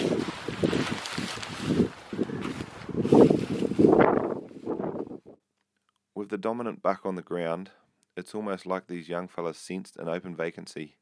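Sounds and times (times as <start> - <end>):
footsteps through grass: 0.0 - 5.1
wind buffeting microphone: 0.0 - 5.4.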